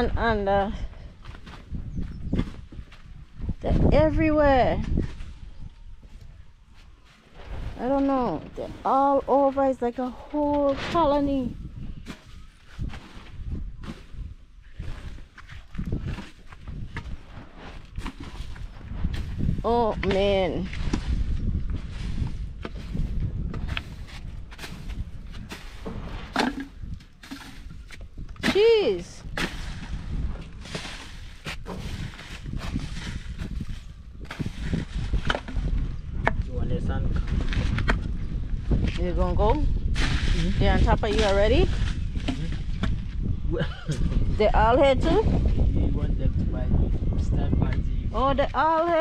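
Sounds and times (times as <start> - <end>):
low rumble: 0.0 - 48.8
pole poking through trash: 22.6 - 36.4.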